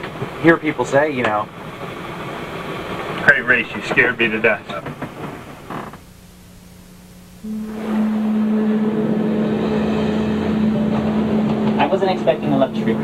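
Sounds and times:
steady low hum: 0:00.0 - 0:13.0
sea noise: 0:07.4 - 0:13.0.

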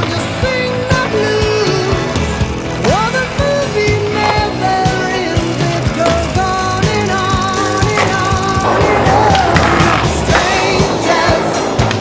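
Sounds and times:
loud background music: 0:00.0 - 0:12.0
skateboard wheels rolling on pavement: 0:00.0 - 0:12.0
skateboard clacks: 0:02.8 - 0:12.0.

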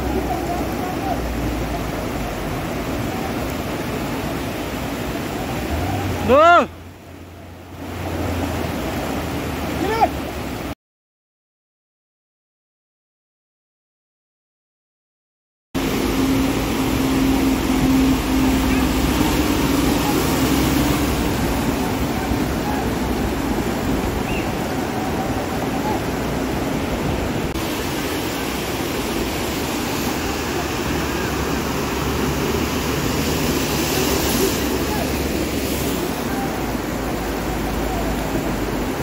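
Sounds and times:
floodwater rushing over rocks: 0:00.0 - 0:10.8, 0:15.8 - 0:39.0
low drone: 0:15.8 - 0:24.2.

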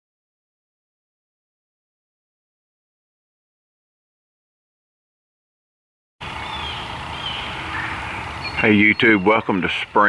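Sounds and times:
steady background hiss: 0:06.2 - 0:10.0
faint bird chirps: 0:06.4 - 0:09.8.

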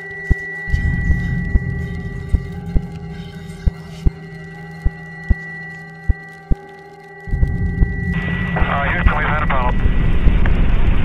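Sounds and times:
ambient electronic music: 0:00.0 - 0:11.0
radio voice chatter: 0:08.6 - 0:09.8.

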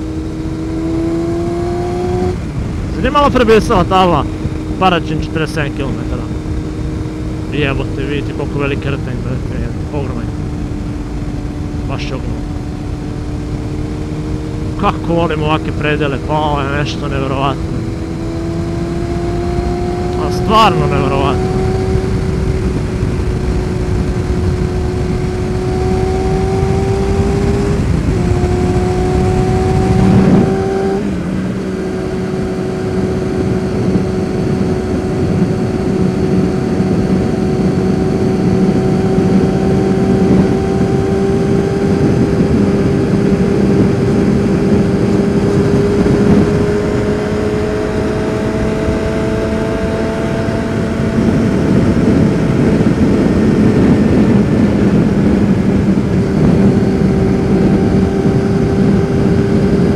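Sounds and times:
wind noise on microphone: 0:00.0 - 0:14.8, 0:17.6 - 0:59.9
motorcycle engine revving: 0:00.0 - 0:59.9.

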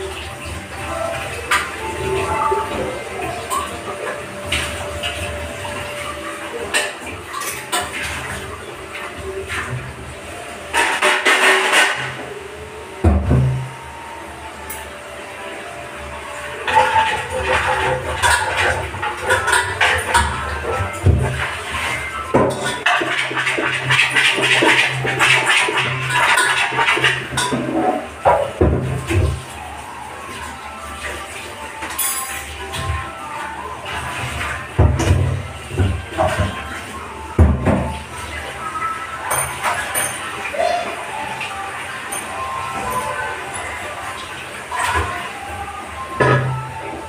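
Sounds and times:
tap water running into sink: 0:00.0 - 0:12.3, 0:13.0 - 0:13.8, 0:14.5 - 0:47.0
background music: 0:00.0 - 0:47.0
utensils knocking and clinking: 0:16.7 - 0:29.3.

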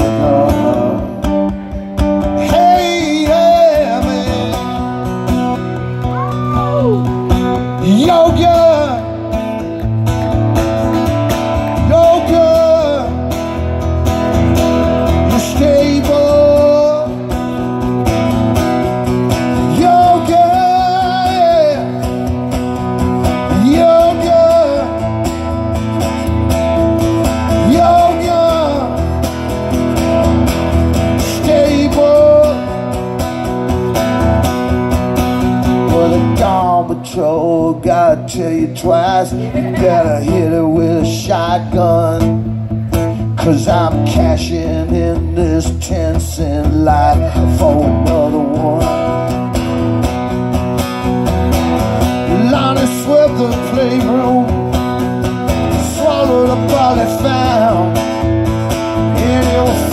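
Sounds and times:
person singing without words: 0:00.0 - 0:01.2, 0:02.3 - 0:05.0, 0:07.8 - 0:09.2, 0:19.7 - 0:22.0, 0:23.5 - 0:25.0, 0:27.6 - 0:29.0, 0:31.2 - 0:32.7, 0:43.4 - 0:49.1, 0:55.8 - 0:58.0, 0:59.0 - 0:59.9
acoustic guitar strummed: 0:00.0 - 0:59.9.

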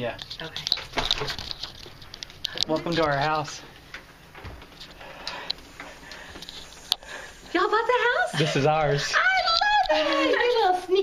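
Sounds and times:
faint clicks and taps: 0:00.1 - 0:07.0.

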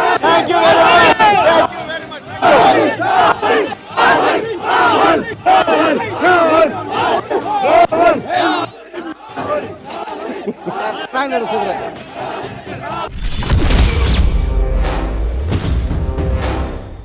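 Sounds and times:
crowd of men shouting and cheering: 0:00.0 - 0:13.1.

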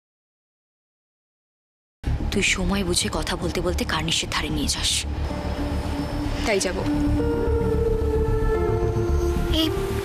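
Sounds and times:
low pulsing rumble: 0:02.0 - 0:10.0
sustained synthesizer chord: 0:05.0 - 0:10.0.

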